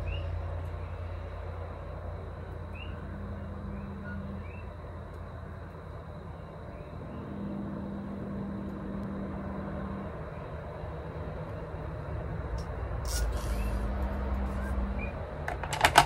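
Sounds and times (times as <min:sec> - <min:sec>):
vehicle passing by: 0:00.0 - 0:15.5
short hiss: 0:13.0 - 0:13.8.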